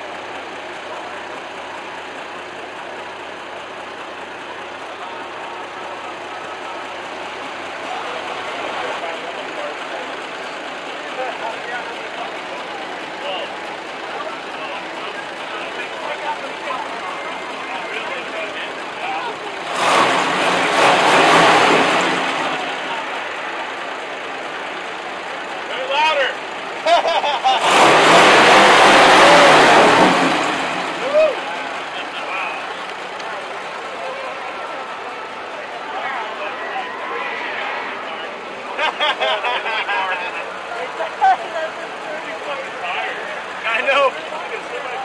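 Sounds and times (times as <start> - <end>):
general murmur of voices: 0.0 - 27.5, 29.2 - 45.0
car engine running: 0.0 - 45.0
people talking: 4.2 - 27.7, 28.4 - 45.0.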